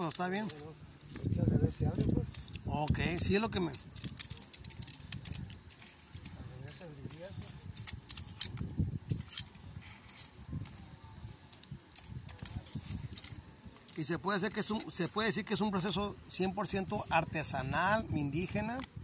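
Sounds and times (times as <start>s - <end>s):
metal tongs clicking on shells: 2.0s - 10.8s.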